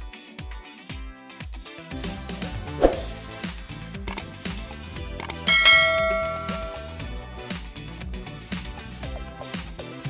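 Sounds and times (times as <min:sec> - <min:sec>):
background music with steady beat: 0:00.0 - 0:10.0
bell chime: 0:05.2 - 0:07.1.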